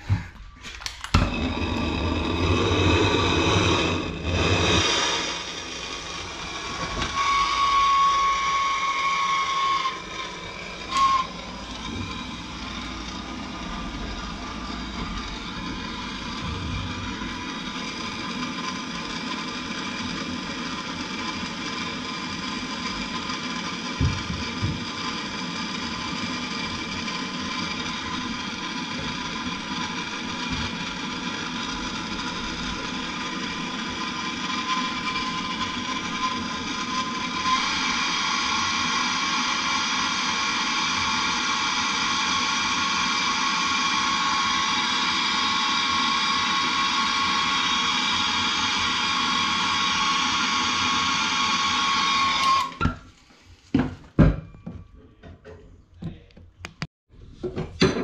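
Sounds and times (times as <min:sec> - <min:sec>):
blowtorch hissing and whistling: 0:00.0 - 0:53.0.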